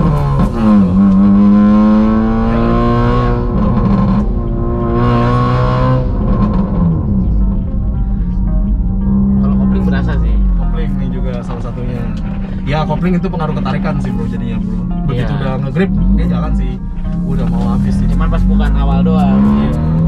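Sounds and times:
car engine through gear changes: 0.0 - 7.7, 15.9 - 20.0.

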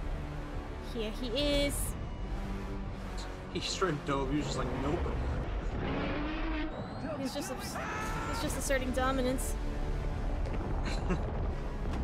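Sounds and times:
deep steady rumble: 0.0 - 6.8.

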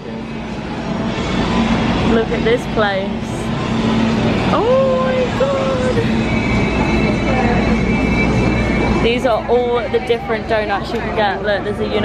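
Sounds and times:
crowd noise and hum: 0.0 - 12.0
faint steady high tones: 0.0 - 12.0
voice holding long drawn-out tones: 4.4 - 10.5.

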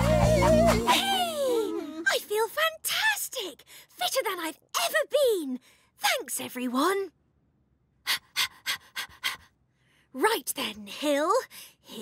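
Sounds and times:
cartoon character panting: 8.1 - 9.5.

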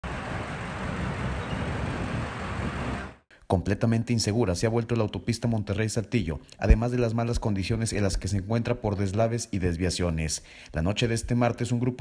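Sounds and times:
low traffic rumble: 0.0 - 3.2
vehicle engines running: 0.0 - 3.2.

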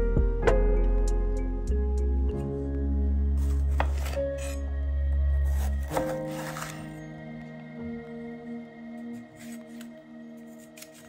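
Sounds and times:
soft background music: 0.0 - 11.0
knife slicing bell pepper: 3.4 - 4.6, 5.4 - 7.0.

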